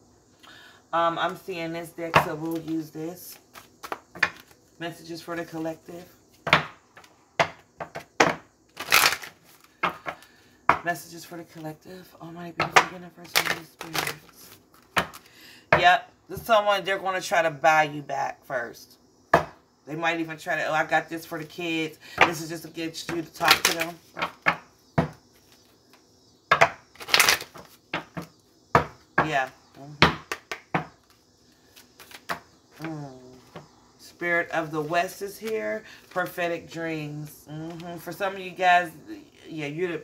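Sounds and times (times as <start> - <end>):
cards being shuffled: 2.3 - 4.7, 8.7 - 10.2, 13.2 - 15.3, 23.1 - 24.4, 25.4 - 26.0, 27.0 - 28.3, 30.3 - 33.6.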